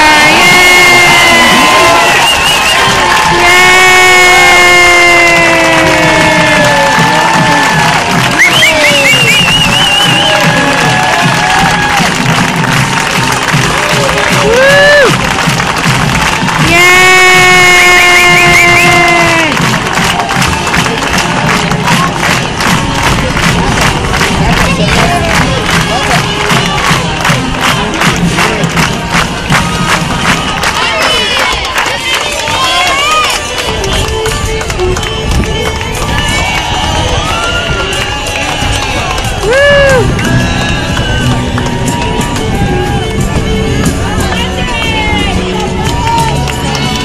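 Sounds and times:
crowd cheering and whooping: 0.0s - 26.9s, 28.4s - 34.1s, 35.4s - 47.0s.

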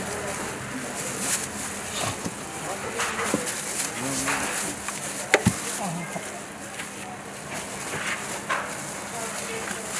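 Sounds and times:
indistinct voices: 0.0s - 7.4s.

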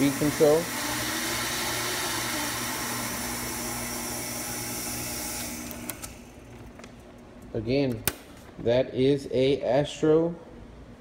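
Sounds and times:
envelope feeder hum and hiss: 0.0s - 11.0s.

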